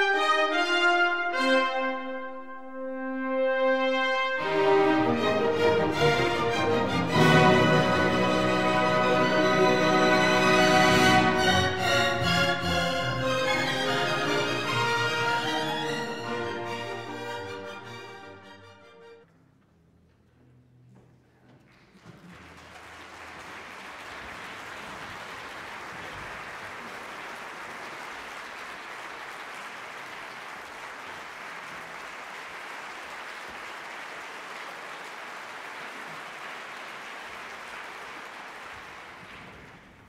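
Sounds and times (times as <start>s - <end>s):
audience applauding: 21.6s - 40.0s.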